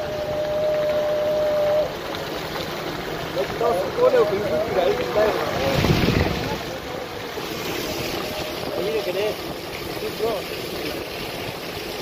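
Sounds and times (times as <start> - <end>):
road noise: 0.0 - 12.0
faint voices: 3.3 - 11.0
wind rushing over microphone: 4.4 - 9.7.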